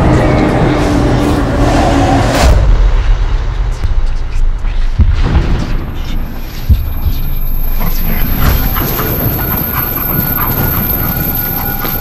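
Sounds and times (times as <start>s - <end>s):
loud low rumble: 0.0s - 11.4s
dog-like animal cries: 8.9s - 12.0s.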